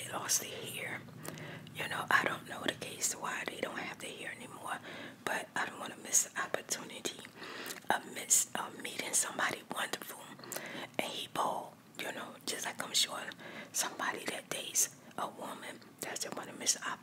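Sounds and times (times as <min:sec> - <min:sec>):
woman whispering: 0:00.0 - 0:01.0, 0:01.8 - 0:17.0.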